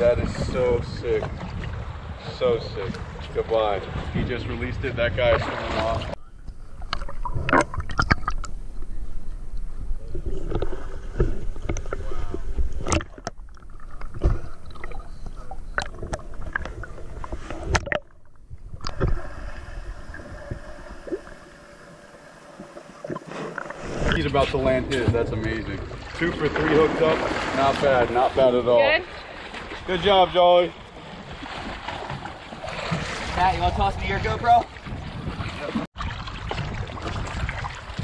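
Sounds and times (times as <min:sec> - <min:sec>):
sea water sloshing and splashing: 0:05.1 - 0:08.7, 0:10.1 - 0:38.0
bubbling underwater: 0:06.3 - 0:08.7, 0:09.6 - 0:24.2.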